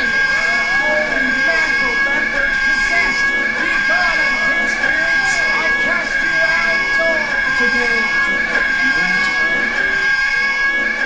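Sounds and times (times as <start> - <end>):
animated film music: 0.0 - 11.0
steady high-pitched whine: 0.0 - 11.0.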